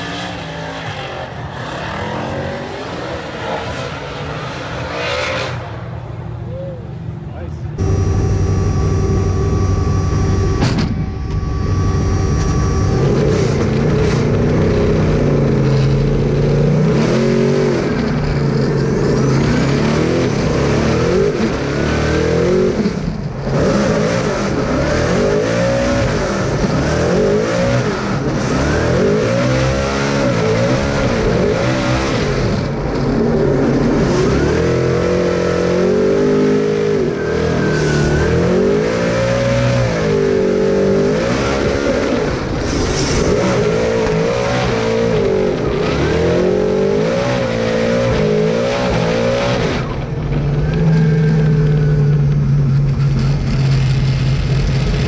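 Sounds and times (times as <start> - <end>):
car engine revving: 0.0 - 6.5, 7.1 - 55.0.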